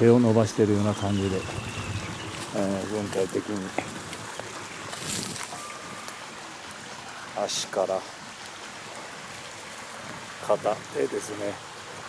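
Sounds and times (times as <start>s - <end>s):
stream water rushing: 0.0s - 12.0s.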